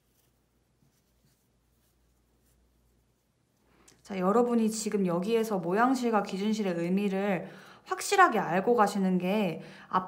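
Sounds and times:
cord rustling: 0.0s - 4.1s.

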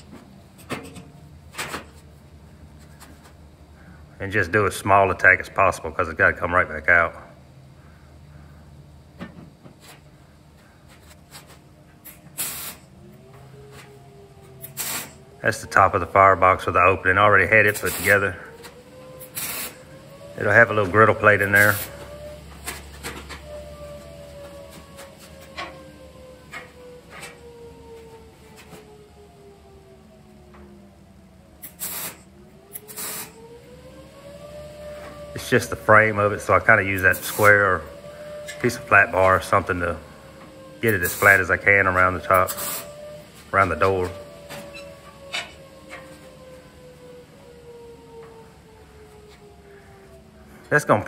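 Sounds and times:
faint steady hum: 0.0s - 51.0s
welding crackle: 19.2s - 19.8s, 31.6s - 33.4s.

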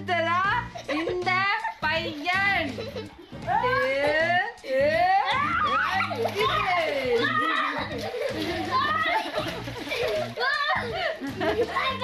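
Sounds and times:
water splashing: 0.4s - 12.0s
children shouting and squealing: 5.2s - 12.0s.

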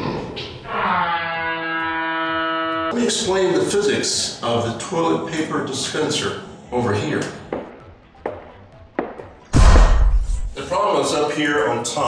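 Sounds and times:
wrong answer buzzer: 0.7s - 2.9s.

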